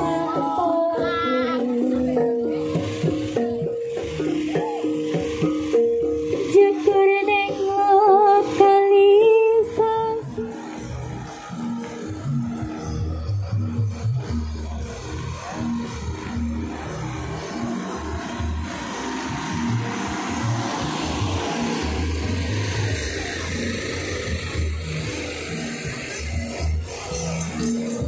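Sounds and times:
music with heavy bass over loudspeakers: 0.0s - 28.0s
rushing noise: 10.2s - 28.0s.

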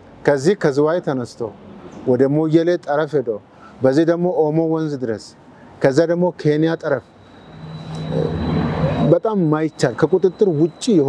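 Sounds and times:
engine humming: 6.8s - 11.0s.

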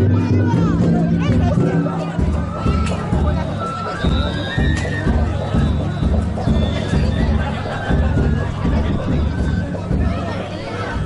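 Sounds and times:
taiko drum beats: 0.0s - 11.0s.

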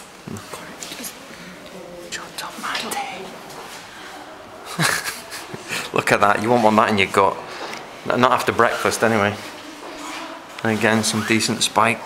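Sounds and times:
quiet voices speaking: 0.2s - 12.0s.

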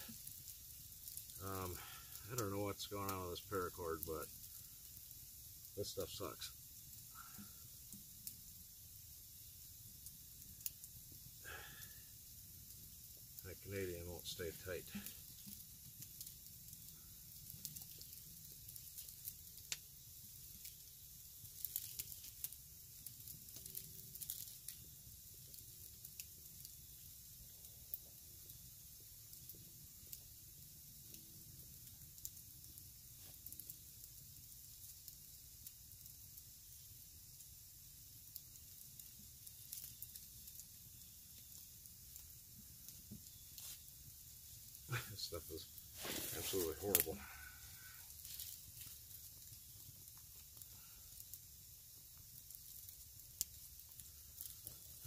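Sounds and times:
cord rustling and ticking: 48.2s - 49.0s.

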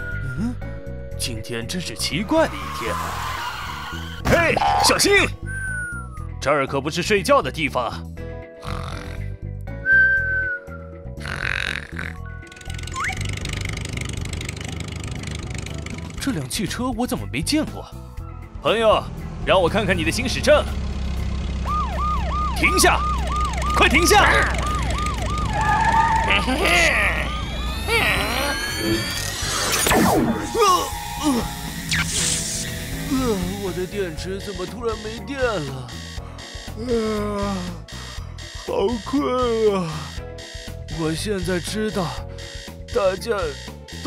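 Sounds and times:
cartoon snoring: 8.6s - 9.4s, 11.2s - 12.9s
high falling whistle: 9.9s - 10.7s
electronic tones sweeping upward: 12.7s - 13.4s, 21.6s - 35.2s
sharp electronic zap: 27.8s - 33.9s.

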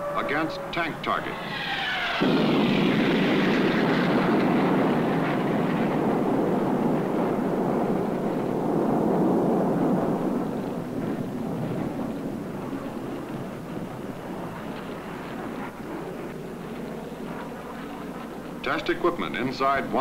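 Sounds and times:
flames rushing: 0.1s - 20.0s.

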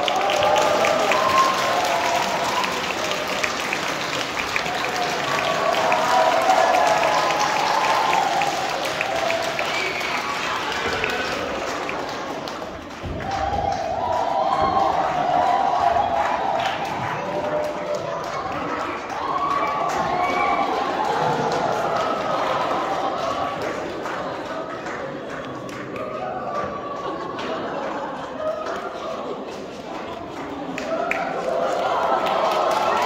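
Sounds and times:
audience applauding: 0.0s - 33.0s.

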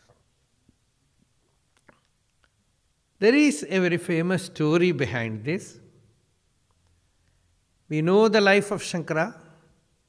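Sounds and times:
faint mouth clicks: 1.7s - 2.6s.

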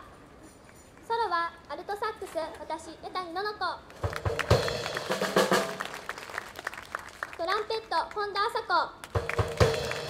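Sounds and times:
audience applause: 4.0s - 7.5s, 9.0s - 10.0s.

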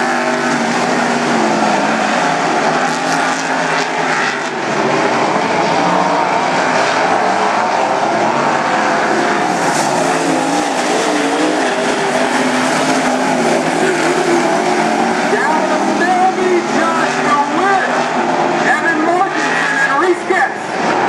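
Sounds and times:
race car engines: 0.0s - 21.0s.

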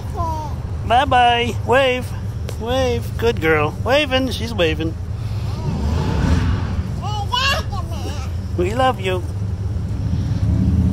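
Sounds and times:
steady low rumble: 0.5s - 10.2s
motor vehicle passing by: 4.4s - 10.9s.

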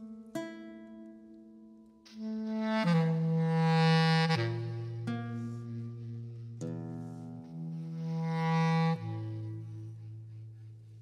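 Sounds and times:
bass clarinet low notes: 2.1s - 11.0s.

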